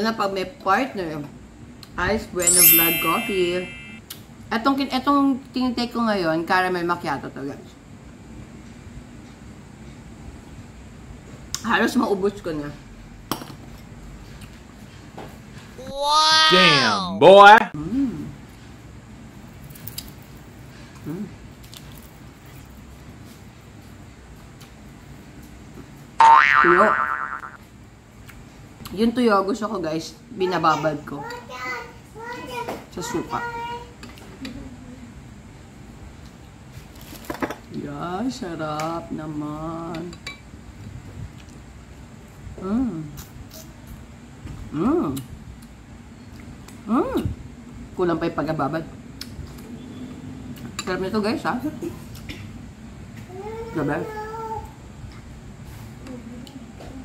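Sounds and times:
low steady background noise: 0:00.0 - 0:57.0
man saying wow: 0:16.4 - 0:17.7.

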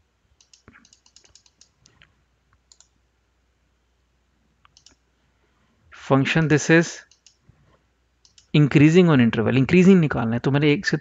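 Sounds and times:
faint computer mouse clicks: 0:00.4 - 0:03.0, 0:04.6 - 0:05.0, 0:07.1 - 0:07.4, 0:08.2 - 0:08.5.

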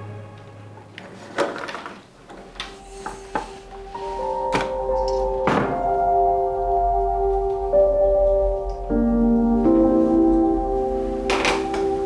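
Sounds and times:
sustained background music: 0:00.0 - 0:01.2, 0:02.6 - 0:12.0
door closing thunk: 0:05.4 - 0:05.9, 0:11.3 - 0:11.9.

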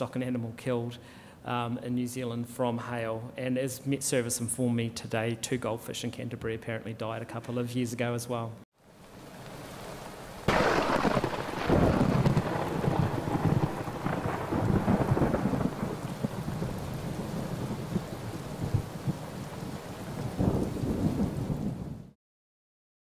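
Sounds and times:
rain falling: 0:08.8 - 0:22.2
rolling thunder rumbles: 0:10.5 - 0:22.2
thunder clap: 0:10.5 - 0:22.2.

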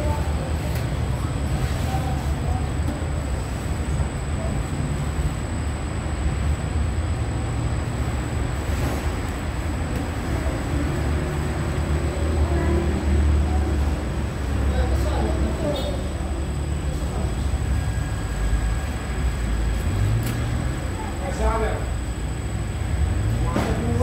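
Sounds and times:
machinery low rumble: 0:00.0 - 0:24.0.

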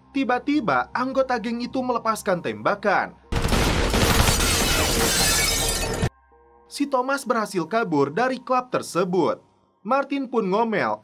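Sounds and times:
pistol gunshots: 0:03.3 - 0:05.0
glass shattering: 0:03.5 - 0:06.1.

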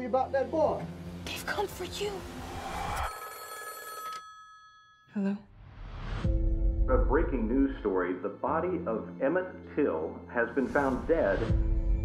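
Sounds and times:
telephone bell ringing: 0:02.9 - 0:05.1.

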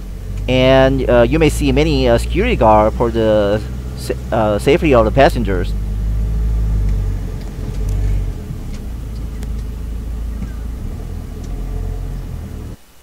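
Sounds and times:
car engine and road noise: 0:00.0 - 0:13.0.

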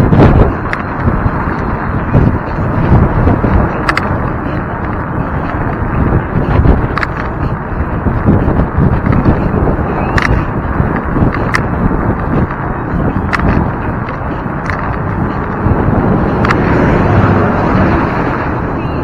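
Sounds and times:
wind rushing over microphone: 0:00.0 - 0:19.0
sharp clicks: 0:03.8 - 0:04.2, 0:10.0 - 0:10.4.

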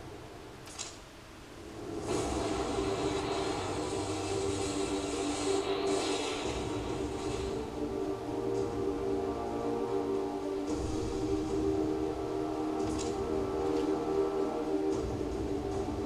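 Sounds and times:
noise with sustained low tones: 0:00.0 - 0:16.0.

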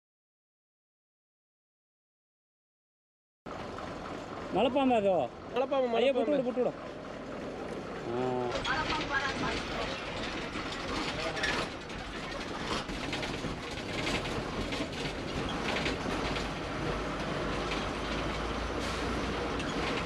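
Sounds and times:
rattling and knocking over bumps: 0:03.5 - 0:20.0
vehicle low rumble: 0:03.5 - 0:20.0.

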